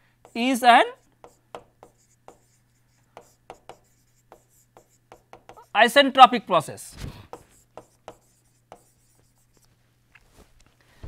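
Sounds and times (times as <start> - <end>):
stylus tapping on tablet: 1.2 - 5.7.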